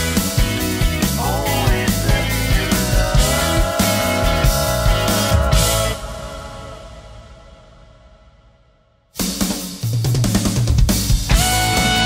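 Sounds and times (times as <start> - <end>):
rock band instrumental: 0.0 - 7.3, 9.2 - 12.0.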